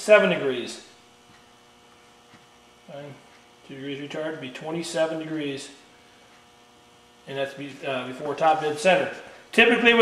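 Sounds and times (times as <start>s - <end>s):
faint electrical hum: 0.0s - 10.0s
person speaking: 7.2s - 10.0s.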